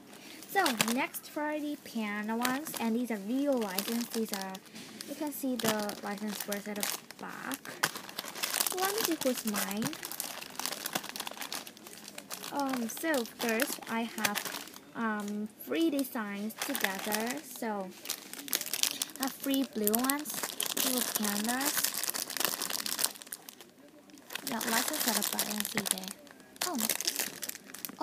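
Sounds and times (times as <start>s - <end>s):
plastic bags crinkling: 0.1s - 28.0s.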